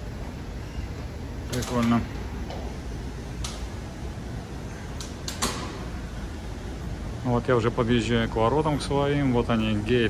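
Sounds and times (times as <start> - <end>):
terminal background hum: 0.0 - 10.0.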